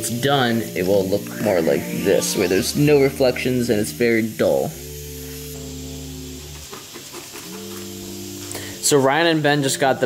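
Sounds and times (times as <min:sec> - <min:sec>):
sustained chords music: 0:00.7 - 0:06.6.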